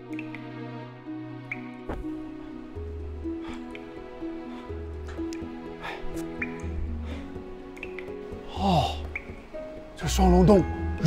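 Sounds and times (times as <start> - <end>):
water dripping: 0.0 - 0.5, 1.4 - 11.0
slow music of held notes: 0.0 - 11.0.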